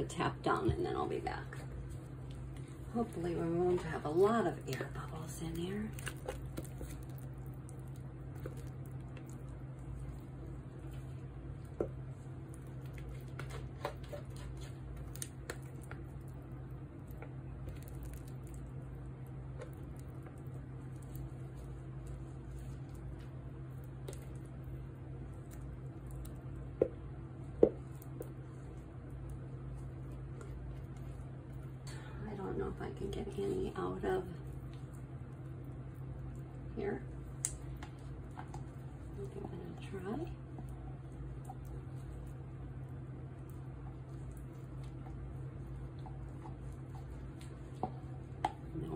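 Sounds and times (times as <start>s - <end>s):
steady low hum: 0.0s - 48.9s
spatula scraping soap batter: 0.1s - 48.9s.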